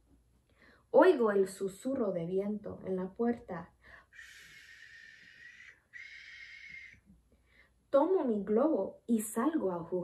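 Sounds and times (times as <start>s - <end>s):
woman blowing a breathy wind sound: 4.1s - 7.0s.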